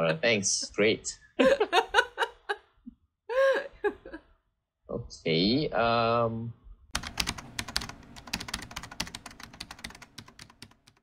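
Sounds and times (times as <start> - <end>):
rapid keyboard typing: 6.9 - 11.0.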